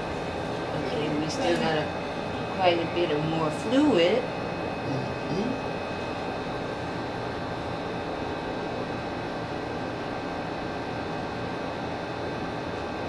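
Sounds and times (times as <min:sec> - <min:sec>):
machine hum and hiss: 0:00.0 - 0:13.0.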